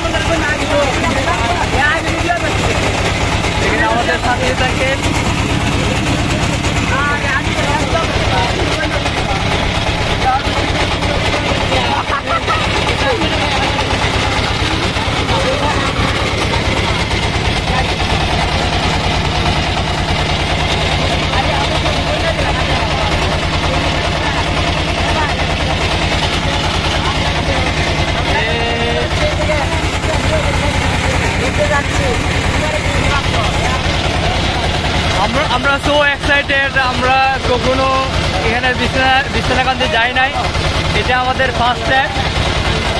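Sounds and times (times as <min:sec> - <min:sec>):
boat engine chugging: 0:00.0 - 0:42.9.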